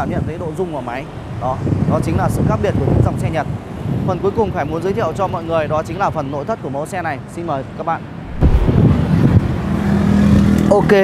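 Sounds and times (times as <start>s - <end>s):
sudden rush of noise: 8.2s - 9.8s.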